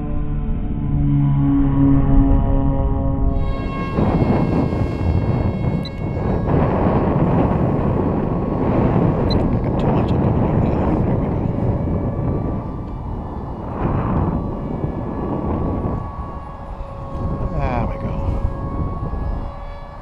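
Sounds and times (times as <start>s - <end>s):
wind buffeting microphone: 3.2s - 20.0s
small electric motor whine: 3.3s - 20.0s.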